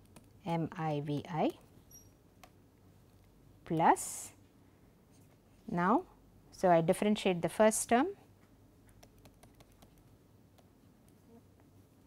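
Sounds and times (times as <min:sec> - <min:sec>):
stylus tapping on tablet screen: 0:08.8 - 0:10.7.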